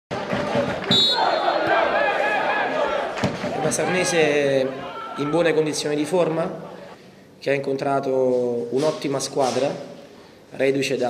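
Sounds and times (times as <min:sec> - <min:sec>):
referee's whistle blast: 0:00.9 - 0:01.6.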